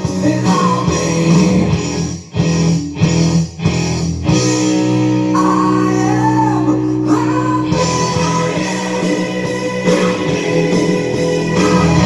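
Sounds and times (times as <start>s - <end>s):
rock music with electric guitar: 0.0s - 12.0s.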